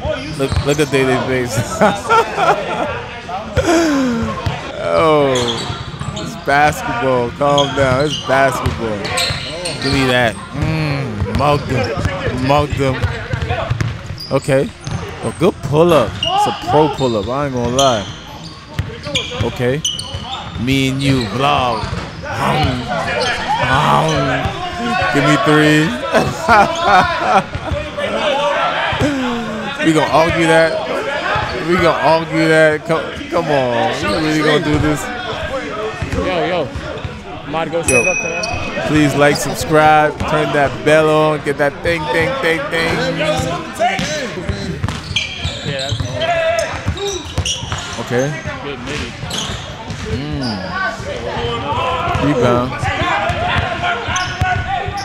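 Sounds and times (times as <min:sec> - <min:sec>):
players shouting: 0:00.1 - 0:13.7, 0:20.4 - 0:47.6, 0:50.4 - 0:55.0.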